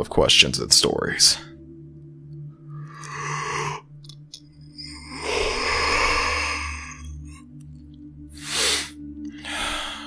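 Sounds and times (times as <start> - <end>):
man breathing and sighing: 8.3 - 10.0.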